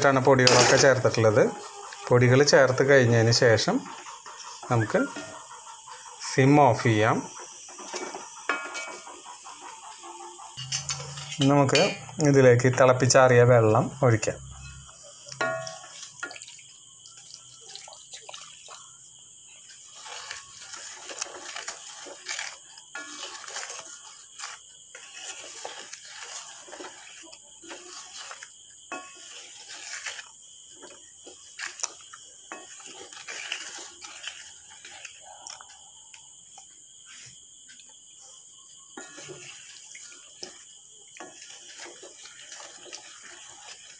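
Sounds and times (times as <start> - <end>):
wooden spatula scraping metal pan: 0.0 - 19.0, 19.6 - 35.9, 39.0 - 43.9
insect chirring: 0.0 - 43.9
water pouring into pan: 15.4 - 30.2, 41.2 - 43.9.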